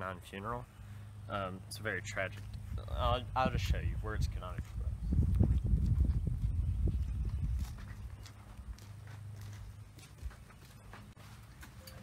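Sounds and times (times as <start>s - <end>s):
footsteps walking: 7.2s - 12.0s.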